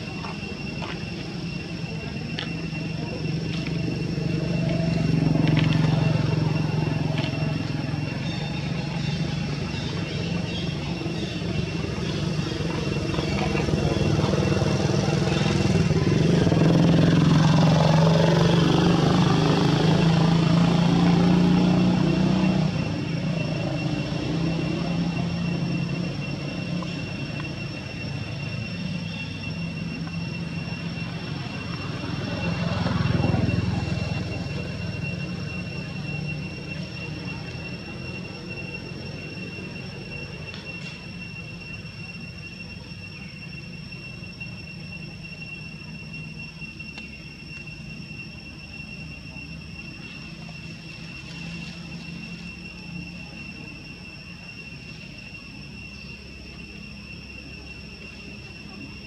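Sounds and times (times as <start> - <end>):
vehicle engine running: 0.0 - 59.0.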